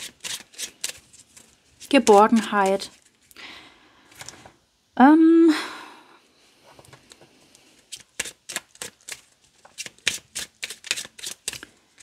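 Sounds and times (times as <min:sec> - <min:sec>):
cards being shuffled: 0:00.0 - 0:03.3, 0:06.9 - 0:12.0.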